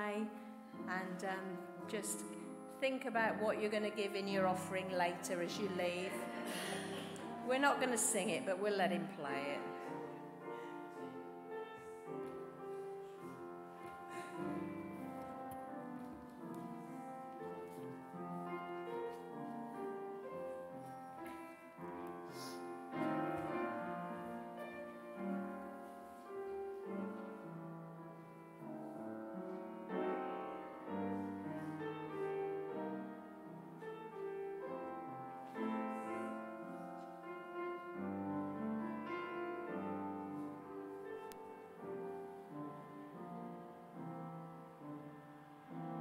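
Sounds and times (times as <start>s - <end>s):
solo piano hymn: 0.0s - 46.0s.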